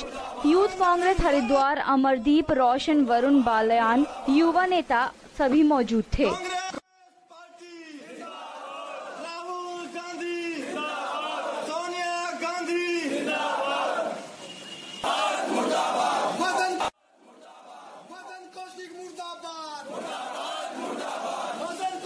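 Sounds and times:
crowd of men shouting slogans: 0:00.0 - 0:04.4, 0:06.6 - 0:14.3, 0:15.0 - 0:18.6, 0:19.6 - 0:22.0.

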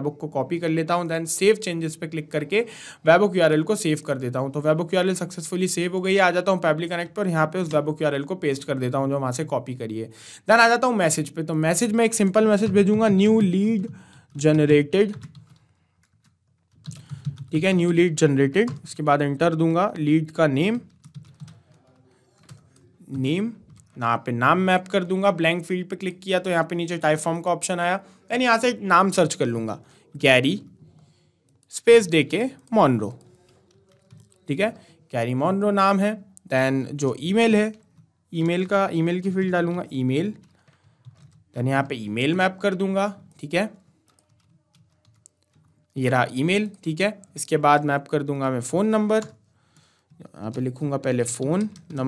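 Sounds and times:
man speaking: 0:00.0 - 0:15.3, 0:17.5 - 0:20.9, 0:23.0 - 0:30.8, 0:31.7 - 0:33.3, 0:34.4 - 0:40.4, 0:41.6 - 0:43.8, 0:46.0 - 0:49.4, 0:50.2 - 0:52.0
faint keyboard typing: 0:00.4 - 0:09.6, 0:10.4 - 0:52.0.

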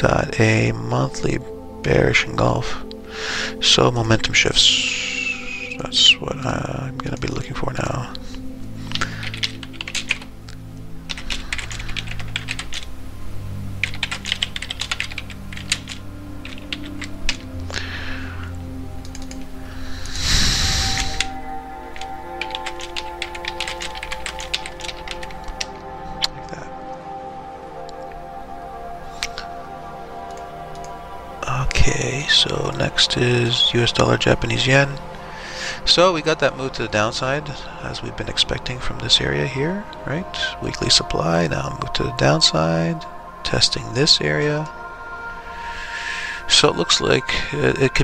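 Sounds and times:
soft background music: 0:00.0 - 0:48.0
computer keyboard typing: 0:09.0 - 0:10.3, 0:11.1 - 0:12.9, 0:13.8 - 0:17.5, 0:19.0 - 0:19.5, 0:21.0 - 0:25.7
rush of noise: 0:19.8 - 0:21.4.

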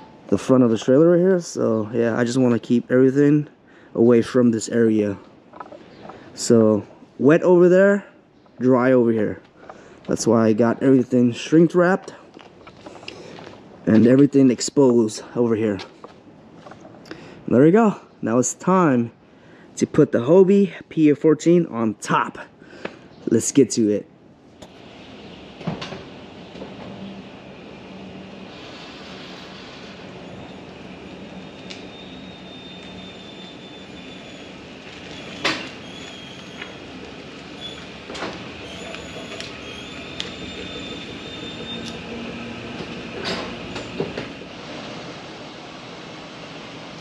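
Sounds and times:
trailer rolling over concrete: 0:24.8 - 0:47.0
trailer frame squeaking: 0:28.1 - 0:45.2.

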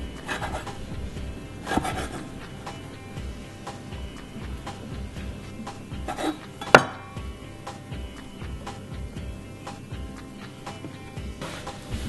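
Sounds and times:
soft background music: 0:00.0 - 0:12.0
knife scraping slide: 0:00.2 - 0:00.8, 0:01.6 - 0:02.4, 0:06.1 - 0:06.4.

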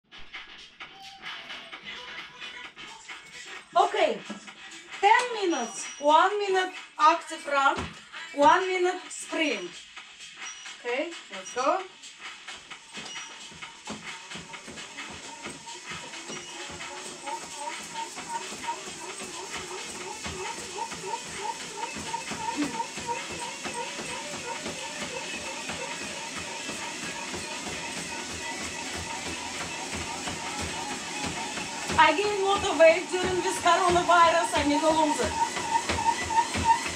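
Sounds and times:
music: 0:00.0 - 0:36.9
footfalls on a treadmill: 0:07.4 - 0:08.8, 0:12.4 - 0:36.9.

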